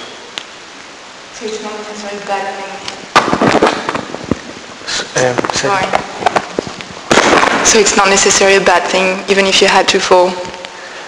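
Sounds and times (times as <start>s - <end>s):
crackling and clicking burst: 2.2s - 10.8s.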